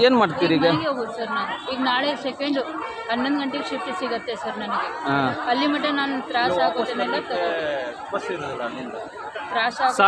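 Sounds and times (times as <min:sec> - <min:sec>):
chatter of several people: 0:00.0 - 0:10.0
woman talking: 0:00.5 - 0:07.4.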